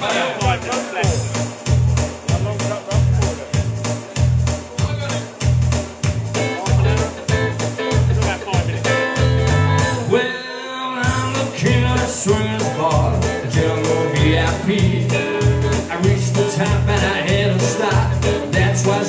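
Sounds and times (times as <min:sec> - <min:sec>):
live band with electric guitar: 0:00.0 - 0:19.0.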